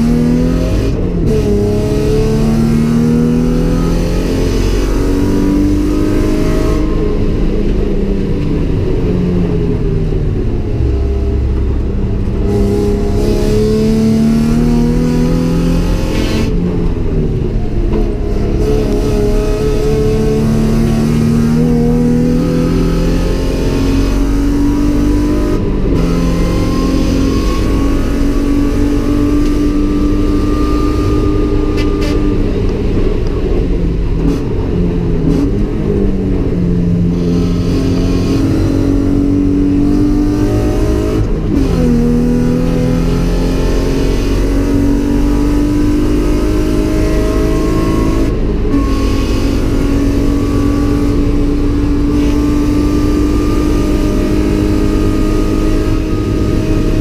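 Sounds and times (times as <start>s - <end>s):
car engine revving through gears: 0.0s - 57.0s.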